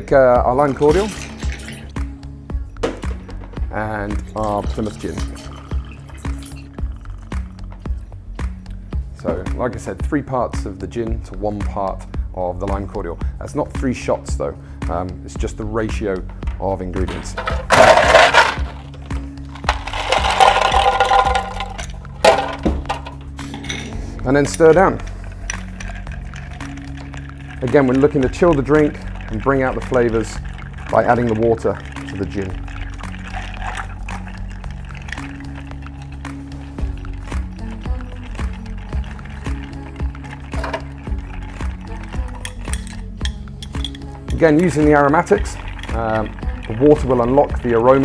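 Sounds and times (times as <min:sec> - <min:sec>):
background music: 0:00.0 - 0:48.0
ice cubes clinking in glass: 0:00.8 - 0:01.9, 0:17.0 - 0:23.8, 0:25.4 - 0:37.0, 0:37.7 - 0:47.3.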